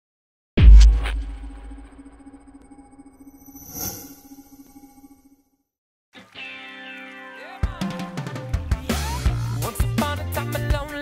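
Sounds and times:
shimmering electronic swell: 2.0s - 5.4s.

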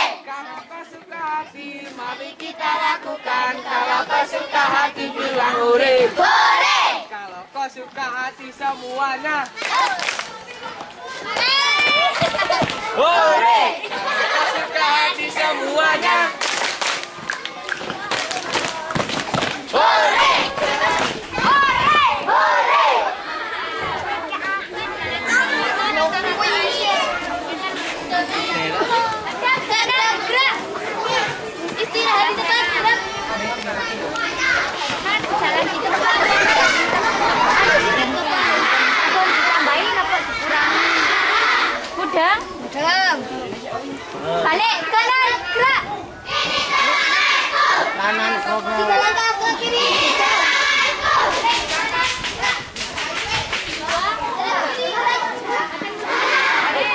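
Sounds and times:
children chattering: 0.0s - 56.9s.

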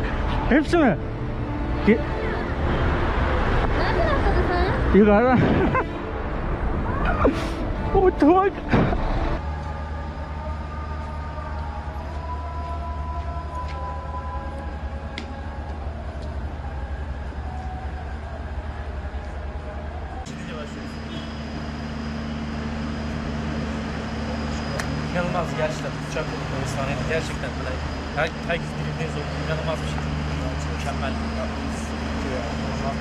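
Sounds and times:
low vehicle rumble: 0.0s - 33.0s
steady hum: 20.2s - 33.0s.

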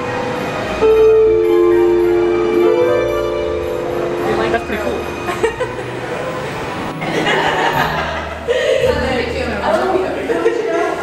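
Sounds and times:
harp notes ringing: 0.0s - 8.4s.

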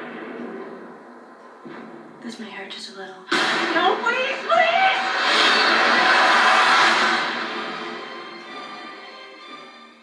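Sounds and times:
film trailer soundtrack on tv: 0.0s - 10.0s.

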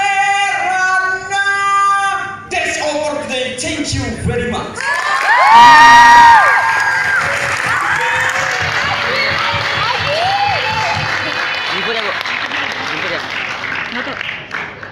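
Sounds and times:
shouted cheer: 4.8s - 12.0s
audience applause: 4.8s - 14.9s.

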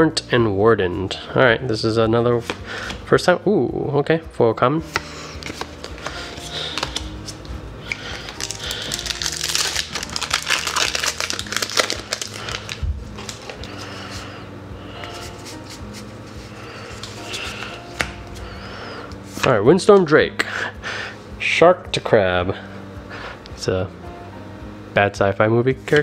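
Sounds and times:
soft background music: 0.0s - 26.0s
foil wrapper crinkling and tearing: 5.4s - 13.8s.

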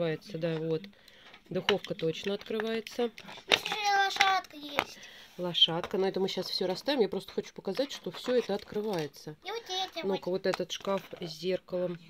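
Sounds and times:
plastic toy furniture clicks: 1.6s - 5.0s
child's high voice: 3.6s - 5.0s, 9.4s - 10.2s.

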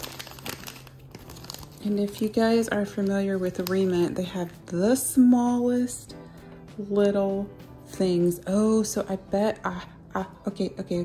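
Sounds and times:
plastic bag crinkling: 0.0s - 4.2s.

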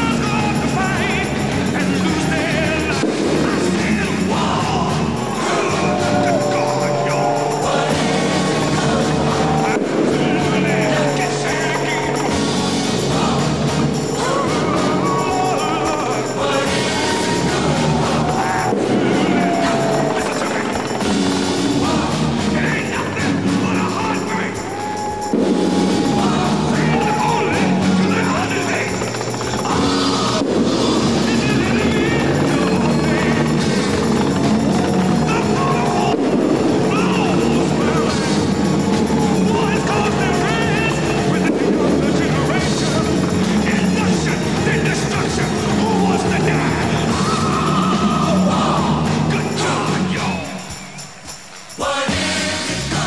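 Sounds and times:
tank engine running: 0.0s - 24.6s, 25.4s - 49.8s
arena crowd cheering and shouting: 0.0s - 53.0s
entrance music: 0.0s - 53.0s.

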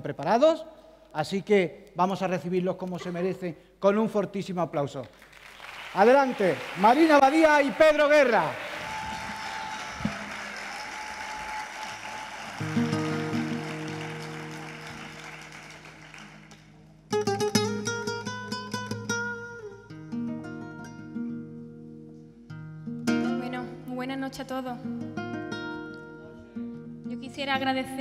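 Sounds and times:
audience applause: 5.2s - 16.8s
acoustic guitar playing: 12.4s - 28.0s.

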